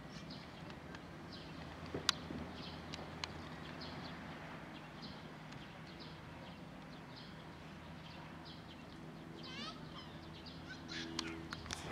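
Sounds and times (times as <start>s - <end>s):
small birds chirping: 0.0s - 11.9s.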